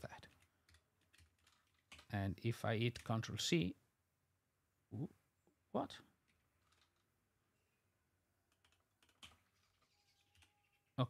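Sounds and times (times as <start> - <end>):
computer keyboard keystrokes: 0.3 - 2.1, 8.5 - 10.5.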